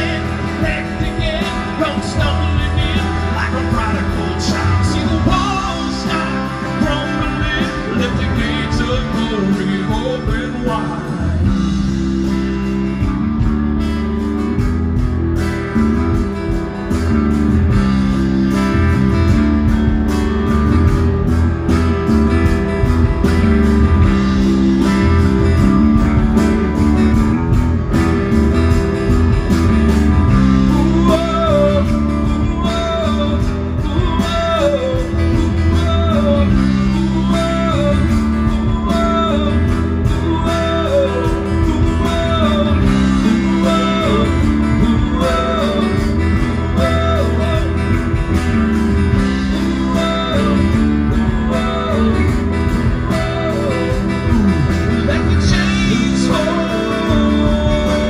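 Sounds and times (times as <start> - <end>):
live rock band playing: 0.0 - 58.0
sliding guitar lead phrase: 0.0 - 58.0
strummed acoustic guitar: 0.0 - 58.0.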